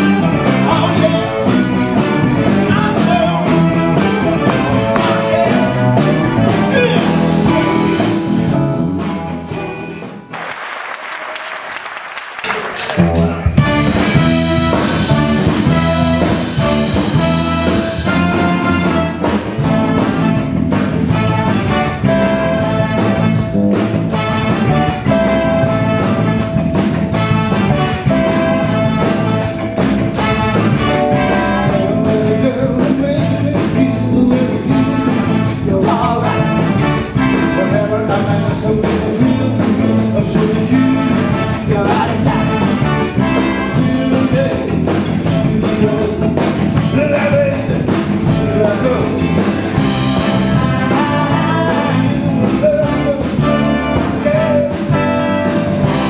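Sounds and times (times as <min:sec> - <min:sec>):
trumpet: 0:00.0 - 0:08.5, 0:12.4 - 0:44.5, 0:48.5 - 0:56.0
live rock band playing: 0:00.0 - 0:10.6, 0:12.4 - 0:56.0
applause: 0:10.3 - 0:13.2
saxophone: 0:13.5 - 0:32.4, 0:34.3 - 0:38.4, 0:40.6 - 0:44.1, 0:49.1 - 0:56.0.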